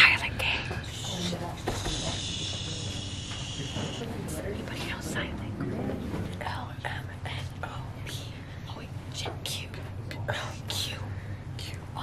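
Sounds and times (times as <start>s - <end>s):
people whispering: 0.0s - 12.0s
steady low hum: 0.0s - 12.0s.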